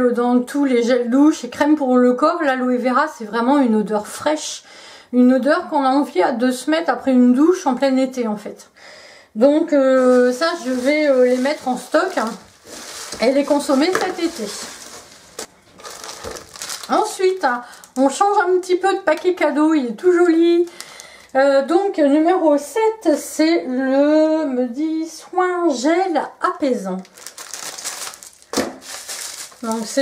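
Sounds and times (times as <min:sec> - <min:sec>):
wrapping paper crinkling: 0:09.9 - 0:18.6, 0:20.2 - 0:21.3, 0:27.0 - 0:30.0.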